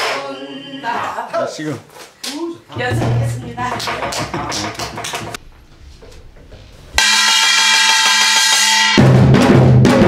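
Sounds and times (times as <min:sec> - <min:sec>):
small brass gong ringing: 0:07.0 - 0:09.0.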